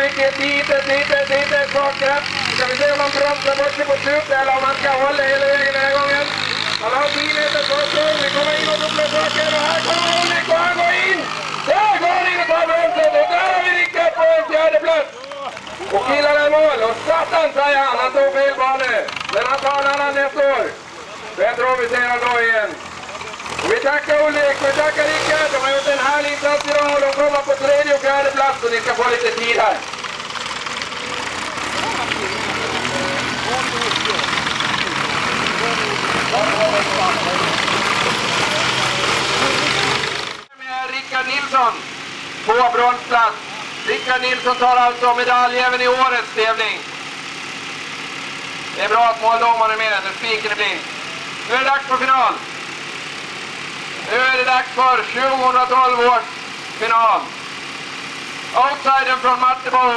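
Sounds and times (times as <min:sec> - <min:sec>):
man commentating excitedly: 0:00.0 - 0:29.9, 0:31.6 - 0:39.7, 0:42.5 - 0:46.9, 0:54.0 - 0:57.4, 0:58.6 - 0:59.9
crowd voices chattering: 0:00.0 - 0:40.6
faint tractor engine running: 0:00.0 - 0:59.9.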